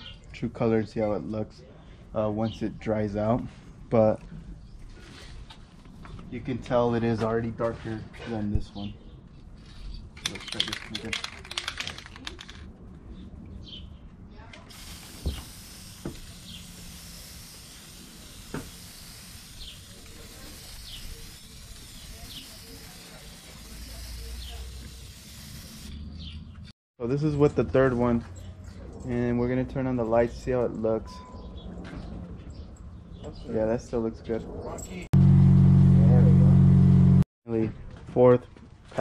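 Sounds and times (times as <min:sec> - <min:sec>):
aerosol can rattling: 0:10.2 - 0:12.7, 0:14.7 - 0:25.9
spray can hissing: 0:14.7 - 0:26.0.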